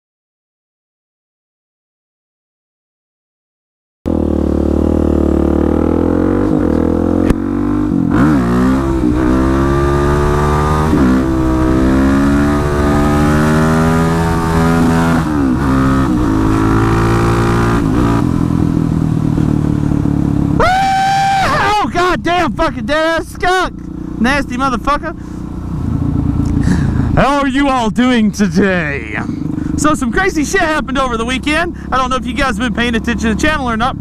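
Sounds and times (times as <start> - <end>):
motorcycle engine changing gears: 4.1 - 21.4.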